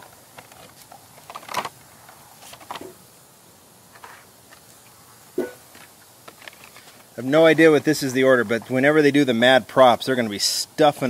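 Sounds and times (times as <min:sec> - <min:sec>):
plastic and card clicks and rustles: 0:00.0 - 0:03.0, 0:05.7 - 0:07.2.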